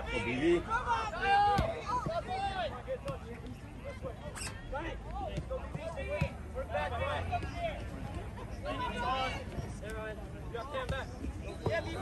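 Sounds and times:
distant shouts and chatter: 0.0 - 12.0.

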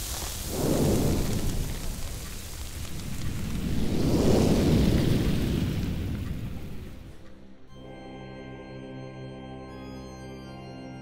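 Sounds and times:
rumbling hissing whoosh: 0.0 - 7.3.

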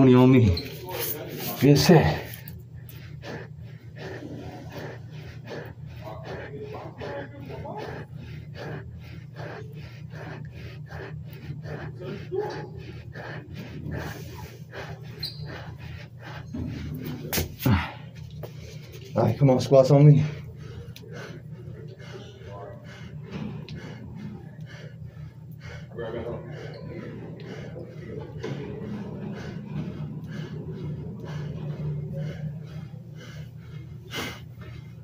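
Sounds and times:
man breathing hard: 0.0 - 35.0
steady low hum: 0.0 - 35.0.

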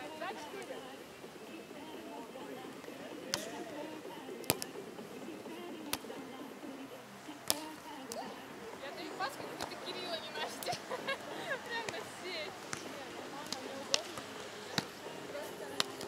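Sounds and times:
volleyball being hit: 3.2 - 4.8, 5.8 - 6.2, 7.4 - 8.4, 11.8 - 16.0.

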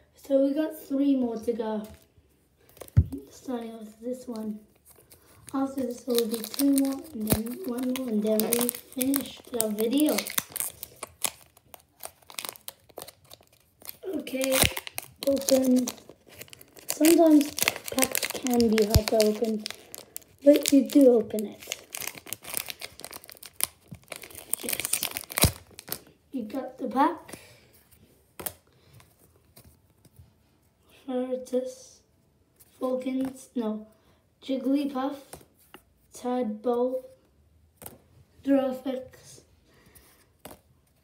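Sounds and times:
trading cards rustling: 1.8 - 26.2
foil wrapper crinkling: 4.3 - 26.2.

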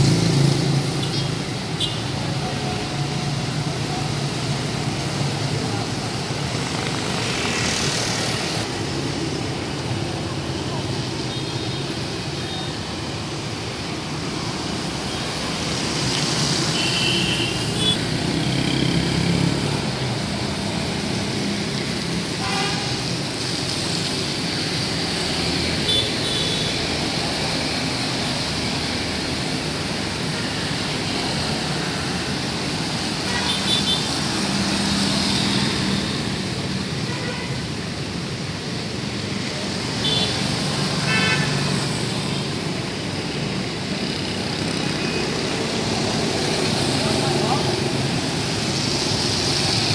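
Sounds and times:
traffic on a wet road: 0.0 - 49.9.

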